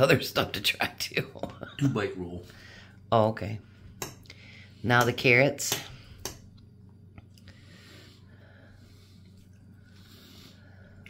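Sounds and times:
low steady hum: 0:00.0 - 0:11.0
man chewing: 0:09.0 - 0:11.0.

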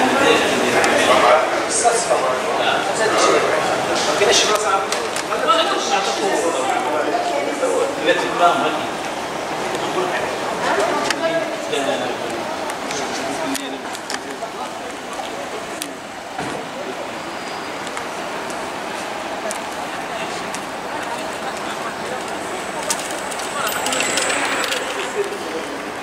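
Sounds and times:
indistinct voices: 0:00.0 - 0:26.0
traffic: 0:00.0 - 0:26.0.

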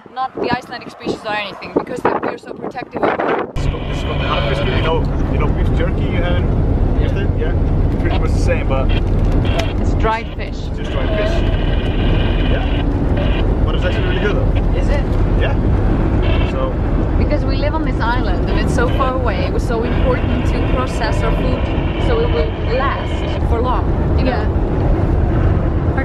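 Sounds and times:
people talking: 0:00.0 - 0:12.8, 0:13.6 - 0:15.6, 0:16.4 - 0:24.6
van engine and road rumble: 0:00.0 - 0:26.0.

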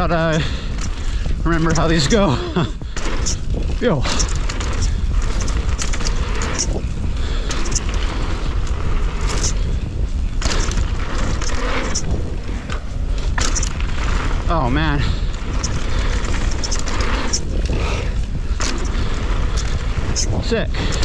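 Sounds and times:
bike rattling over rough ground: 0:00.0 - 0:21.0
tyres crunching over gravel: 0:00.0 - 0:21.0
wind buffeting microphone: 0:00.0 - 0:21.0.

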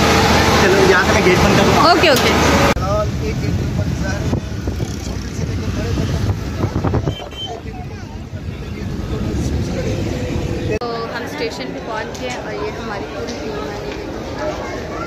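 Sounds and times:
vehicle engine and road rumble: 0:00.0 - 0:15.0
voices: 0:00.4 - 0:15.0.

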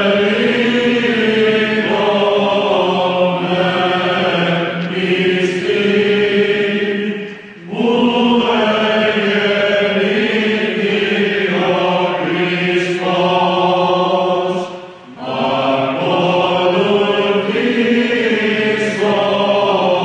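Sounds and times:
choir chanting: 0:00.0 - 0:20.0
steady held drone: 0:00.0 - 0:20.0.

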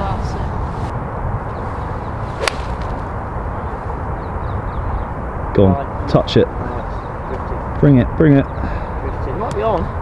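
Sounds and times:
golf club striking ball: 0:02.4 - 0:03.1.

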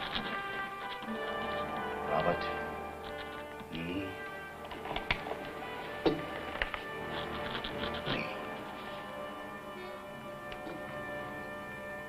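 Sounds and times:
soft orchestral music: 0:00.0 - 0:12.0.

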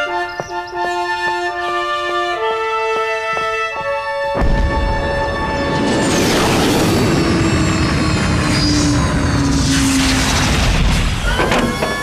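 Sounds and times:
high falling sweep: 0:04.4 - 0:11.4
low whine dropping in pitch: 0:04.4 - 0:12.0
cartoon flying craft whoosh: 0:05.0 - 0:11.4.

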